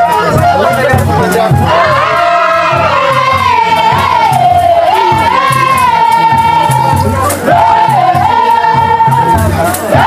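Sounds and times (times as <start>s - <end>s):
repeating drum beat: 0.0s - 10.0s
voices singing together: 0.0s - 10.0s.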